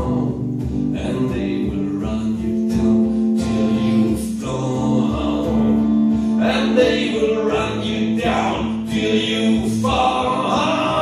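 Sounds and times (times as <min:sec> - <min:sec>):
acoustic guitar strumming blues: 0:00.0 - 0:11.0.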